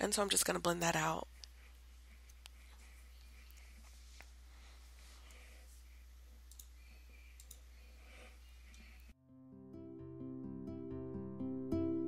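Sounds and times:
small clicks: 0:06.5 - 0:06.8, 0:07.4 - 0:07.7.

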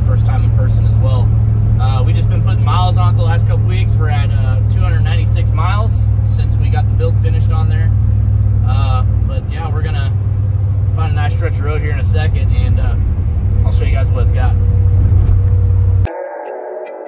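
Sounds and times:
pickup cab engine drone: 0:00.0 - 0:16.1
guitar music with effects: 0:13.0 - 0:17.0.

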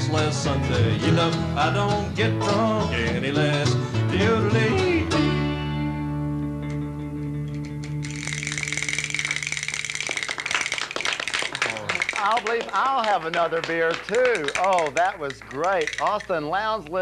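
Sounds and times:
person singing: 0:00.0 - 0:05.7
applause: 0:07.8 - 0:16.2.

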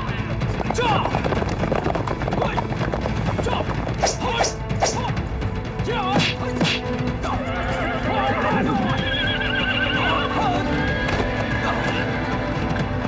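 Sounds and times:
hoofbeats: 0:00.0 - 0:05.1, 0:06.0 - 0:13.0
background music: 0:00.0 - 0:13.0
horses whinnying: 0:07.2 - 0:12.7.

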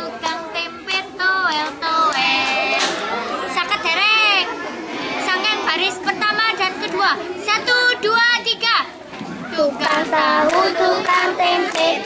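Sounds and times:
girls singing together: 0:00.0 - 0:04.4, 0:09.4 - 0:12.0
people talking: 0:00.0 - 0:12.0.

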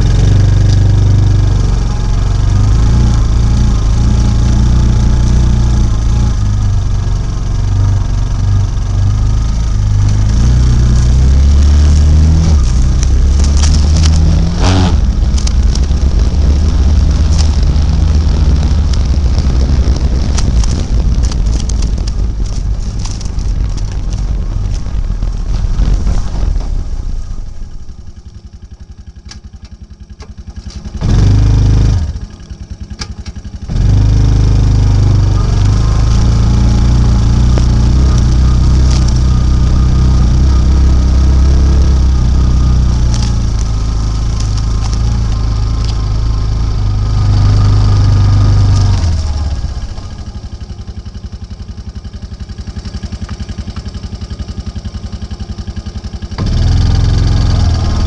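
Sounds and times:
atv engine revving: 0:00.0 - 0:58.0.

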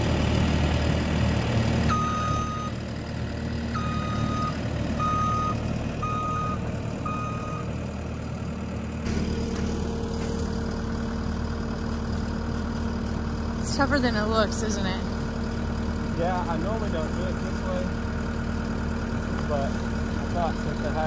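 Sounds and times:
diesel engine running: 0:00.0 - 0:21.0
backup alarm beeps: 0:01.9 - 0:02.8, 0:03.8 - 0:07.7.

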